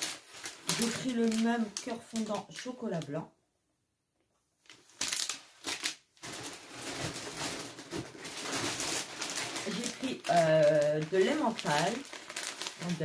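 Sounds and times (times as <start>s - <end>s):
plastic packaging crinkling: 0.0s - 3.2s, 4.6s - 13.0s.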